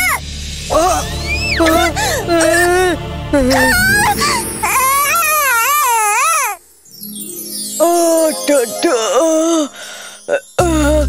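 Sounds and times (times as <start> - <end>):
background music: 0.0 - 11.0
cartoon character wailing: 3.5 - 6.6.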